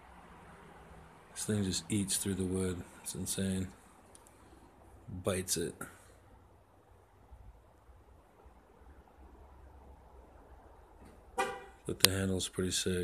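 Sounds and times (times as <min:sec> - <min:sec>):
low traffic rumble: 0:00.0 - 0:13.0
car horn toot: 0:11.4 - 0:11.8.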